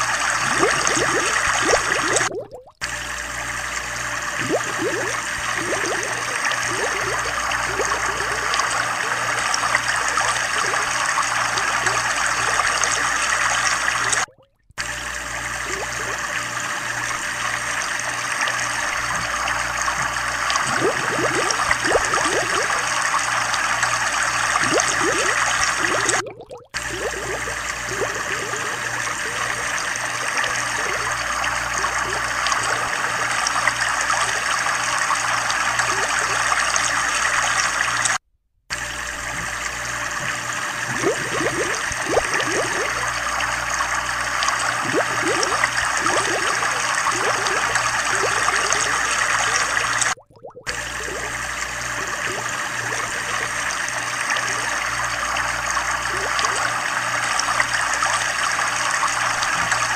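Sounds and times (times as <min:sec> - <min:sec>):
quick bubble blips: 0:00.0 - 0:03.2, 0:04.2 - 0:16.5, 0:18.8 - 0:23.2, 0:24.5 - 0:34.2, 0:39.3 - 0:54.8
trickling bubbling water: 0:00.0 - 0:59.9.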